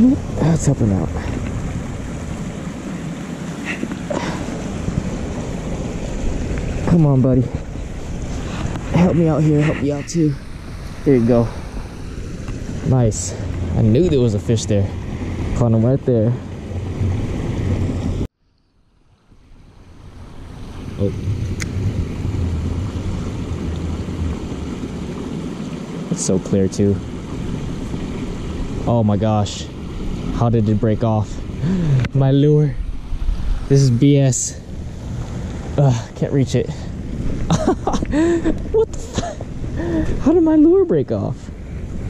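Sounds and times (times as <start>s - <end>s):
wind buffeting microphone: 0.0s - 18.3s, 20.1s - 42.0s
water pouring down spillway: 20.1s - 41.4s.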